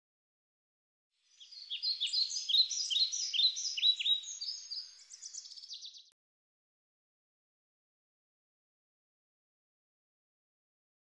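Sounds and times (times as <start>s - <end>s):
songbird singing: 1.2s - 6.2s.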